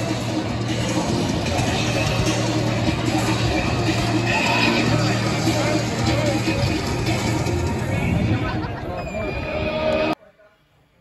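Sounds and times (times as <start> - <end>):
loud music: 0.0 - 10.2.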